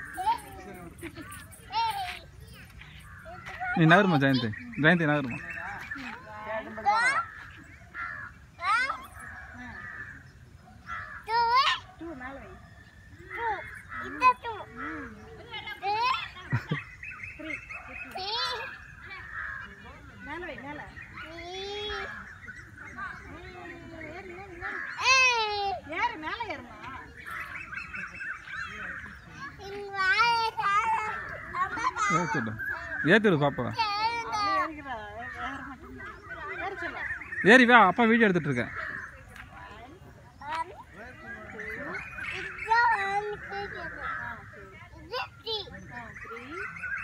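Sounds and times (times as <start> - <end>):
children chattering and calling out: 0.0 - 47.0
crow cawing: 6.9 - 11.5, 13.3 - 15.1, 19.0 - 20.4, 41.9 - 44.6
high child's voice: 29.6 - 32.2.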